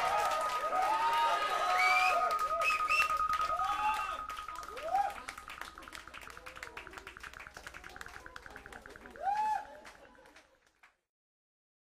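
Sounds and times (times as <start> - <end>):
audience clapping: 0.0 - 11.1.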